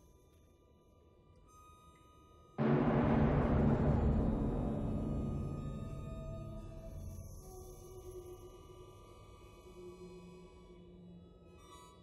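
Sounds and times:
orchestra sustained notes: 2.6s - 7.4s.

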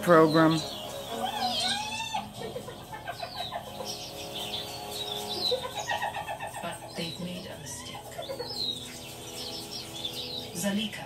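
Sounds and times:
birds calling and chirping: 0.0s - 11.0s.

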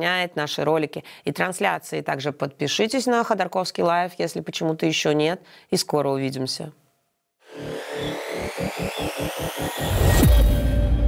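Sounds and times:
electronic news jingle: 7.5s - 11.0s
low pulses: 7.5s - 11.0s
rising sweeps: 7.5s - 11.0s.

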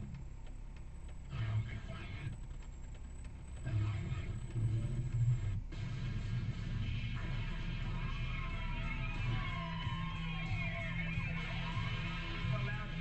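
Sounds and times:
car idling rumble inside cabin: 0.0s - 13.0s
muffled voice from car radio: 0.0s - 13.0s.

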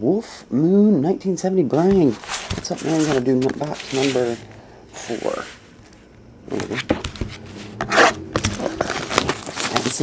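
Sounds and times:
plastic wrap crinkling: 1.8s - 4.4s, 8.0s - 10.0s.

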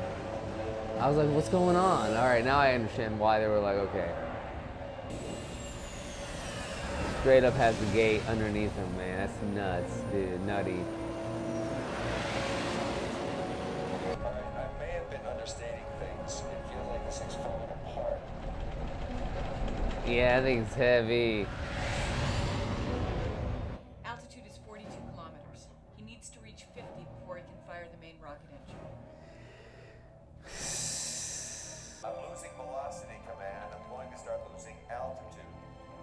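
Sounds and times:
jet engines rumbling: 0.0s - 23.8s
aircraft engine in flight: 3.6s - 9.4s
faint high whine: 4.9s - 11.7s.

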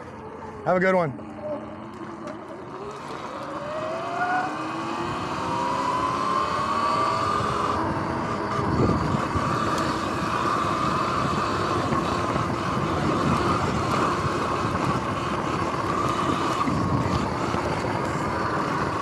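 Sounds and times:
electric motor whining: 0.0s - 19.0s
tyres rumbling on rough ground: 6.2s - 19.0s.

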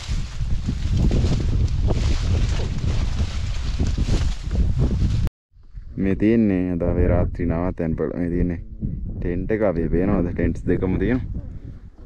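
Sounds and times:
leaves and branches rustling: 0.0s - 5.3s
wind buffeting microphone: 0.0s - 12.0s.

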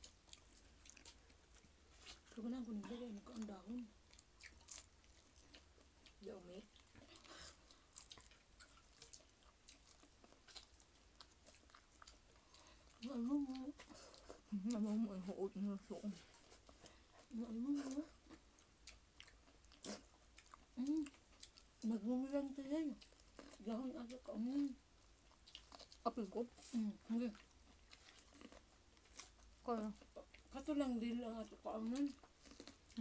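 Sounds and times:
person chewing crisp food: 0.0s - 15.0s, 16.2s - 22.0s, 22.9s - 30.6s, 31.4s - 33.0s
crunching of crispy fried fish: 27.3s - 30.6s, 31.8s - 33.0s.

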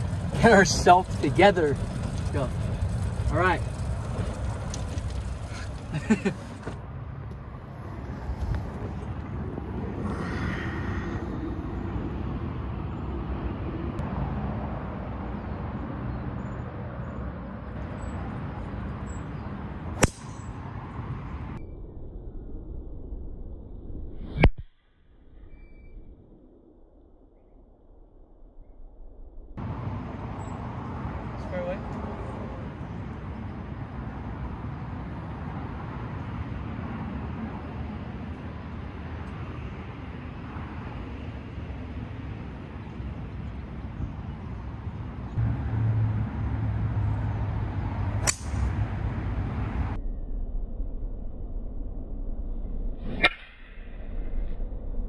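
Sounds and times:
outdoor rumble: 0.0s - 24.4s
golf driver striking ball: 20.0s - 20.4s, 48.2s - 48.7s.

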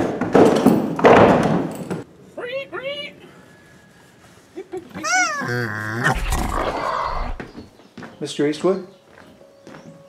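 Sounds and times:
pig grunting: 5.0s - 7.7s.

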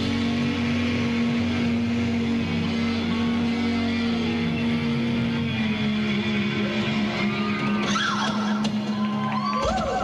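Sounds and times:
distorted amplified harmonica: 0.0s - 8.9s.

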